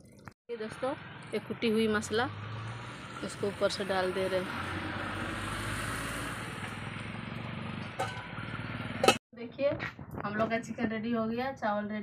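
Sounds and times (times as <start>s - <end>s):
metal lid clinking on pot: 8.0s - 8.3s, 9.0s - 9.2s.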